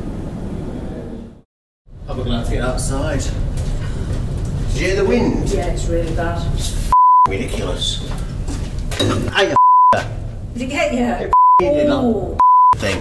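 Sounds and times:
censor beeps: 6.9 - 7.3, 9.6 - 10.0, 11.3 - 11.6, 12.4 - 12.8
man talking: 12.7 - 13.0.

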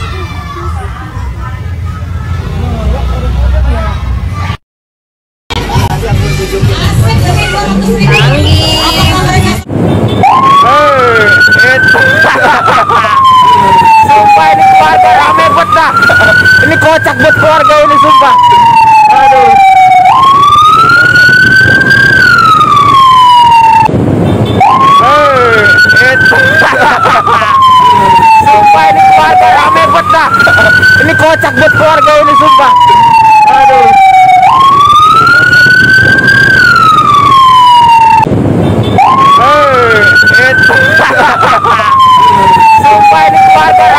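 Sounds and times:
road and engine noise: 0.0 - 4.6, 5.5 - 43.9
siren wailing: 10.2 - 23.9, 24.6 - 38.3, 39.0 - 43.9.

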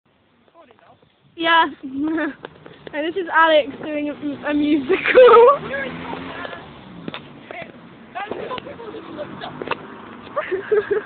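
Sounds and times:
outdoor background noise: 0.1 - 11.0.

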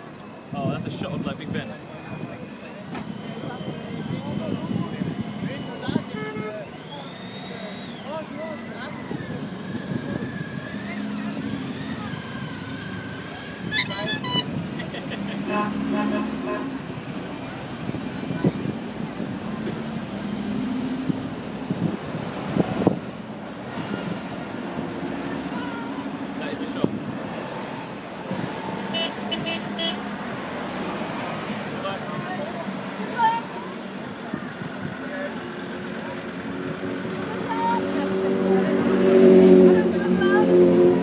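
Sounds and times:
traffic hum: 0.0 - 41.0
voices: 0.0 - 41.0
ambulance horn toots: 5.9 - 6.7, 13.6 - 14.8, 15.4 - 17.0, 28.9 - 30.0.

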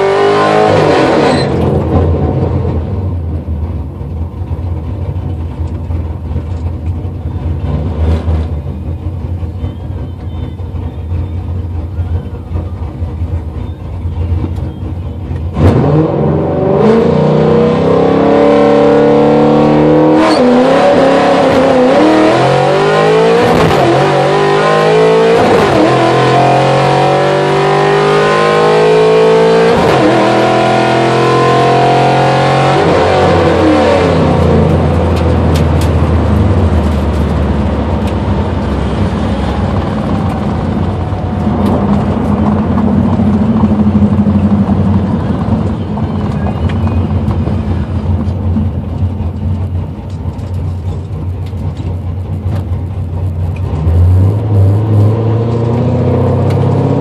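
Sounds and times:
car engine accelerating through gears: 0.0 - 3.4, 4.0 - 57.0.

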